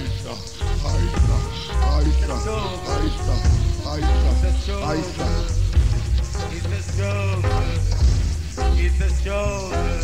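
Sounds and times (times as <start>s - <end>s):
reggae band playing: 0.0s - 10.0s
heavy bass line: 0.6s - 10.0s.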